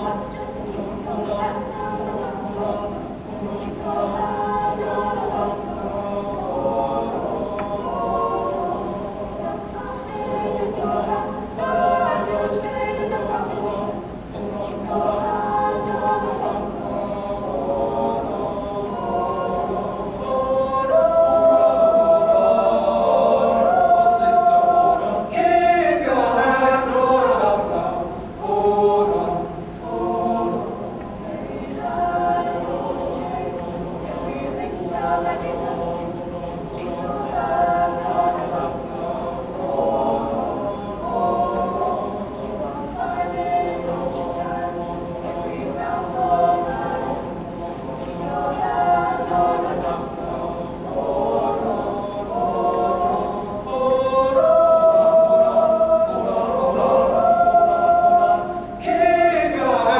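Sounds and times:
choir singing in harmony: 0:00.0 - 0:59.9.

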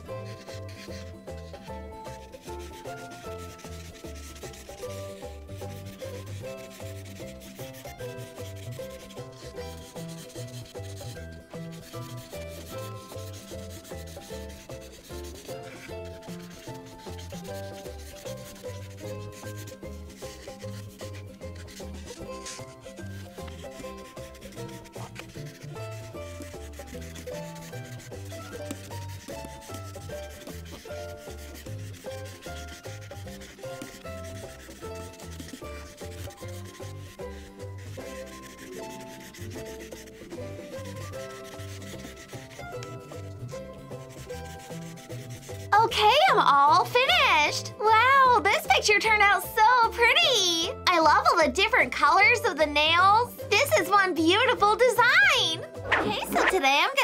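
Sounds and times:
marker rubbing on paper: 0:00.0 - 0:50.7, 0:52.2 - 0:57.0
soft background music: 0:00.0 - 0:57.0.

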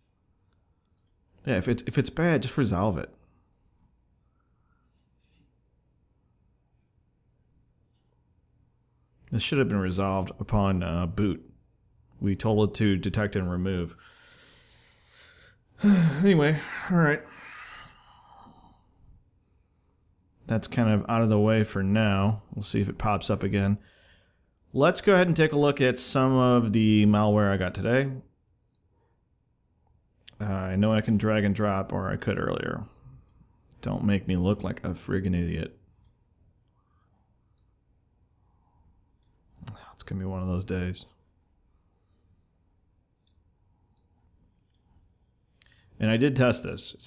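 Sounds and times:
computer mouse clicks: 0:00.5 - 0:01.5, 0:43.2 - 0:45.9
man breathing faintly: 0:13.9 - 0:20.3, 0:23.8 - 0:24.7.

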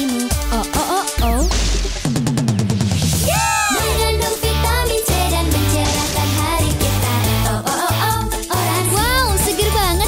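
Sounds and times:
advertising jingle with singing: 0:03.2 - 0:10.0.

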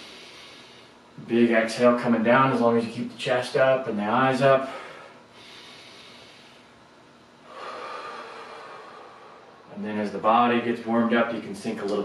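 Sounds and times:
man breathing deeply: 0:00.0 - 0:01.2, 0:04.6 - 0:06.8, 0:07.4 - 0:09.7.

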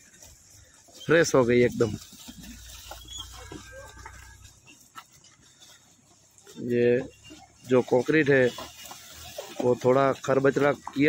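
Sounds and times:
water buffaloes walking: 0:00.0 - 0:11.0
man speaking: 0:01.0 - 0:02.1, 0:06.6 - 0:07.1, 0:07.7 - 0:08.6, 0:09.6 - 0:11.0.

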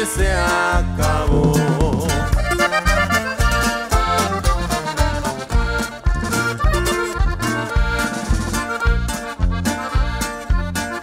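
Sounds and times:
button accordion melody: 0:00.0 - 0:11.0
drum kit beat: 0:00.0 - 0:11.0
electric bass: 0:00.0 - 0:11.0
twelve-string guitar: 0:00.0 - 0:11.0.

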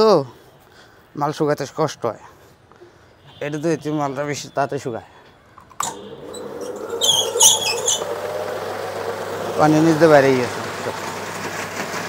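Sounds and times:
high-pitched squeaks: 0:05.8 - 0:08.4
spin extractor motor humming: 0:05.8 - 0:12.0.

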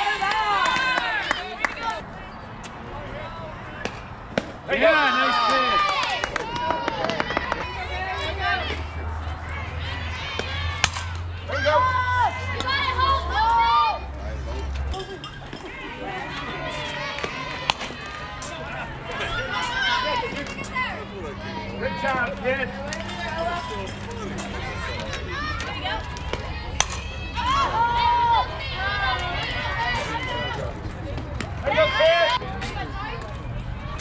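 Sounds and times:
people calling out and chattering: 0:00.0 - 0:34.0
spectators yelling and cheering: 0:00.0 - 0:34.0.

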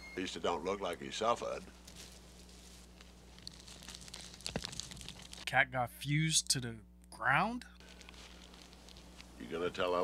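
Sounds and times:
low steady hum: 0:00.0 - 0:10.0
crinkling and rustling: 0:01.8 - 0:05.5, 0:07.8 - 0:10.0.

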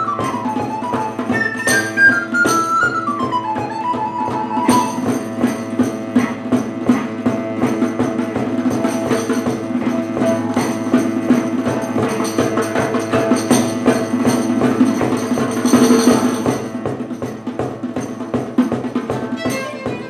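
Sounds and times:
hand percussion: 0:00.0 - 0:20.0
plucked lute: 0:00.0 - 0:20.0.

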